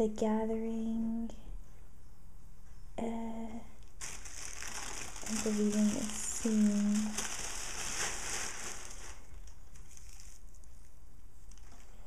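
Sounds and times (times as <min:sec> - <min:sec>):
packaging crinkling: 0:03.9 - 0:10.9, 0:11.5 - 0:12.0.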